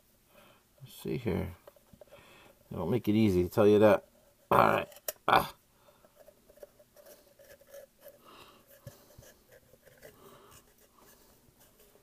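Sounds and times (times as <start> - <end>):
paper scratching and rustling: 6.5 - 12.0.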